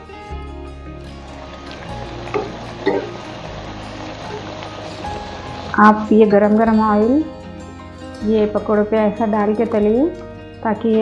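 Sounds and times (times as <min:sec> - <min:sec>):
background music with low notes: 0:00.0 - 0:11.0
food deep-frying in oil: 0:01.1 - 0:07.2.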